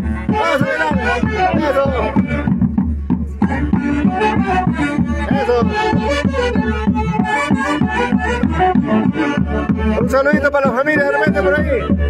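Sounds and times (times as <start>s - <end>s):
bass drum beat: 0.0s - 12.0s
saxophones playing melody: 3.5s - 9.9s.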